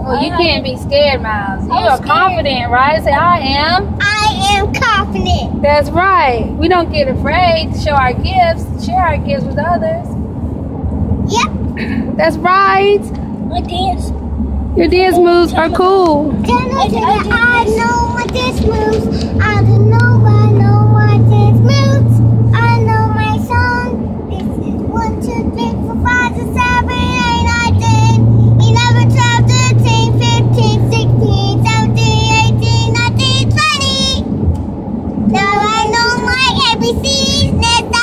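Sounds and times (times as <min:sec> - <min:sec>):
car road drone: 0:00.0 - 0:38.0
steady low hum: 0:00.0 - 0:38.0
child singing: 0:16.4 - 0:34.2, 0:35.3 - 0:38.0.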